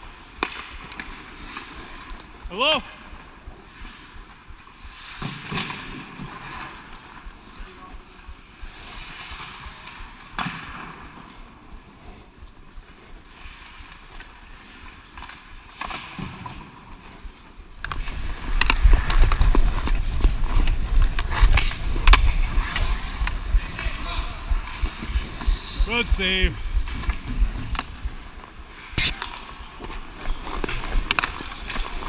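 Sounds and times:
skate blades scraping ice: 0:00.0 - 0:07.6, 0:08.5 - 0:32.0.

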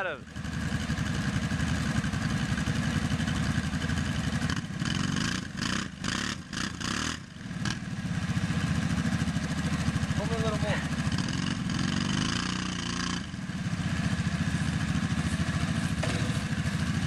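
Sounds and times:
atv engines straining under load: 0:14.5 - 0:16.8.

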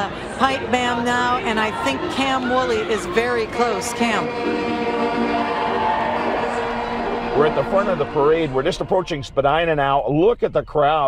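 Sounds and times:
bagpipes playing: 0:02.6 - 0:08.9.

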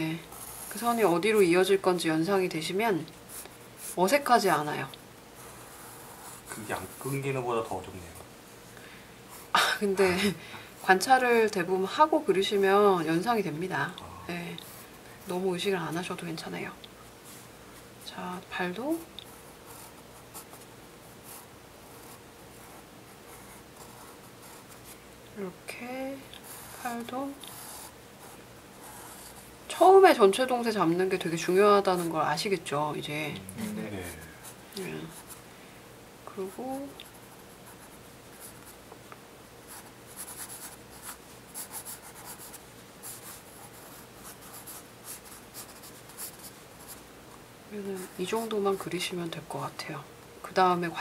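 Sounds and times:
pencil scratching on paper: 0:39.7 - 0:47.0.

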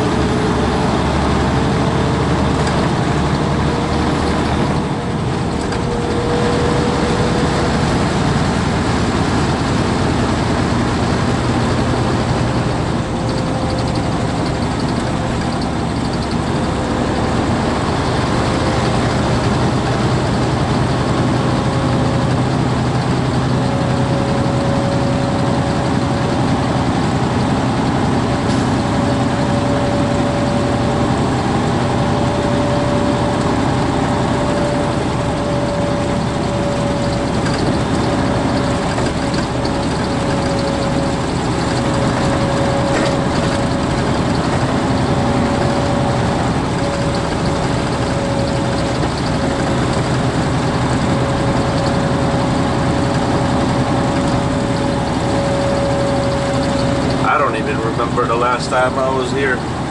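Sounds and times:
truck engine and road drone: 0:00.0 - 0:59.9.

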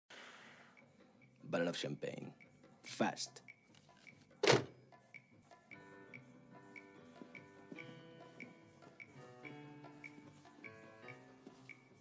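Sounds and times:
quiet film score: 0:00.1 - 0:12.0
short thunk: 0:04.4 - 0:04.7.

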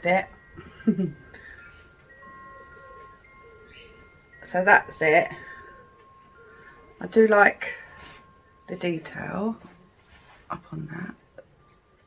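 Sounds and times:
faint chime tones: 0:00.0 - 0:12.0.

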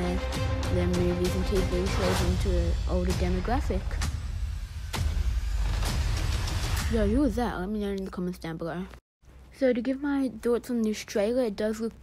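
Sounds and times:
sharp hit: 0:03.0 - 0:07.0.

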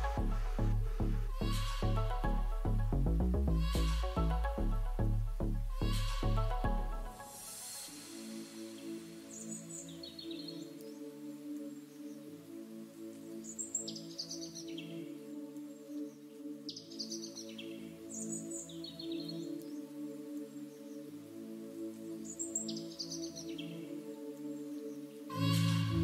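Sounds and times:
calm ambient music: 0:00.0 - 0:26.0.

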